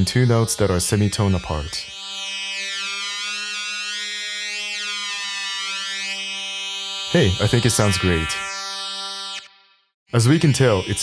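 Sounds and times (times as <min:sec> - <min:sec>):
synth tone sliding down: 0:00.0 - 0:09.7.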